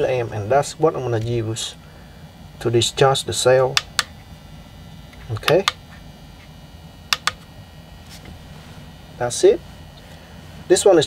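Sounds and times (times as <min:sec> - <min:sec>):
push button clicks: 0:07.1 - 0:07.4.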